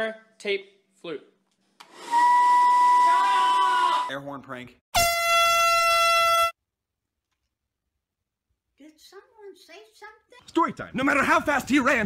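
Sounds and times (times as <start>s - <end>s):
air horn blast: 5.0s - 6.6s.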